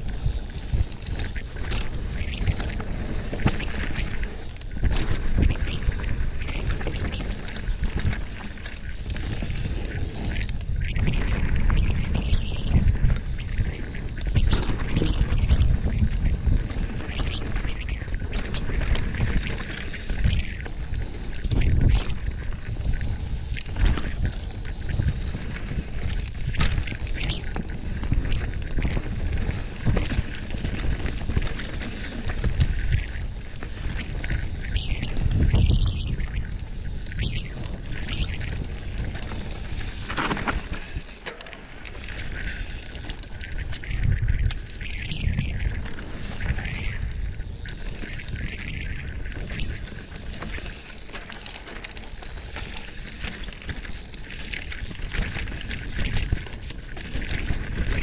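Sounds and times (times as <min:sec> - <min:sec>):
wind buffeting microphone: 0:00.0 - 0:41.1, 0:41.7 - 0:51.2
bike rattling over bumps: 0:00.0 - 0:58.0.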